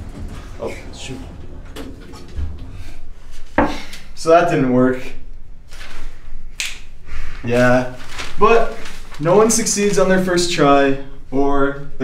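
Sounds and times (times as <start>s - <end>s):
low thud: 0.0s - 3.9s
knocks and rubbing sounds: 0.0s - 4.1s.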